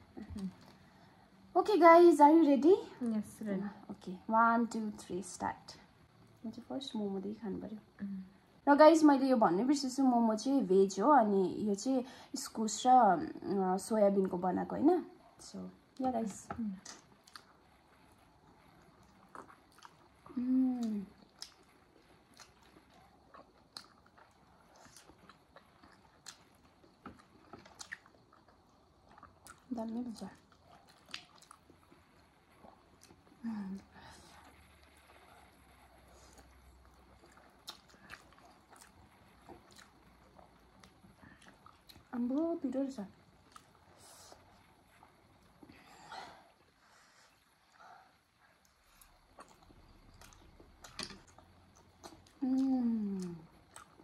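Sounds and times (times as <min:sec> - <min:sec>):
people chewing and mouth smacks: 0:16.8 - 0:42.1, 0:43.2 - 0:54.0.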